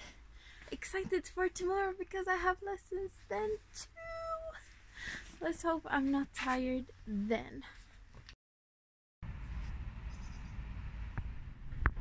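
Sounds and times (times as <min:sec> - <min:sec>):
wind on microphone: 0:09.3 - 0:12.0.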